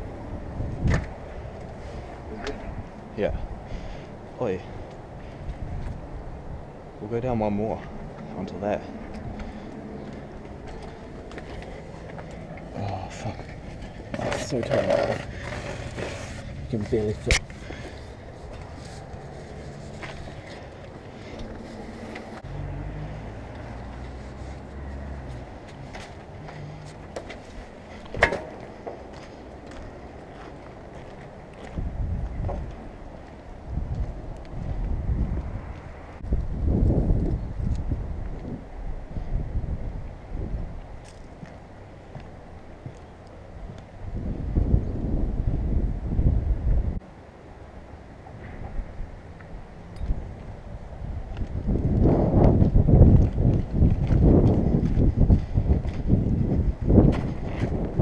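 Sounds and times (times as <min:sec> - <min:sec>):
wind buffeting microphone: 0:00.0 - 0:47.0, 0:48.3 - 0:58.0.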